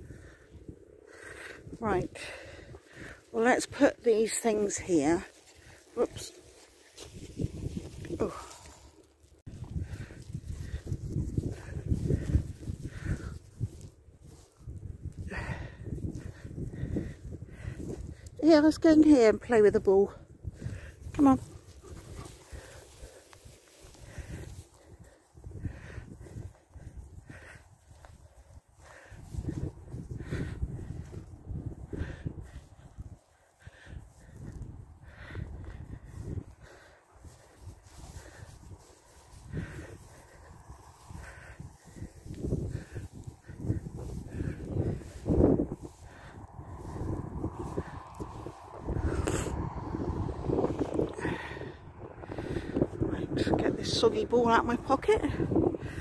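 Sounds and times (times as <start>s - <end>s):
wind rumbling on microphone: 0.0s - 56.0s
dog panting: 21.4s - 25.9s.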